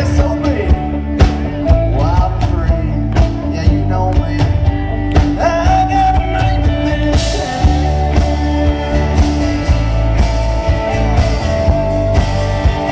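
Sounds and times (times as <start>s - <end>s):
country rock band playing: 0.0s - 12.9s
harmonica lead: 4.7s - 12.9s.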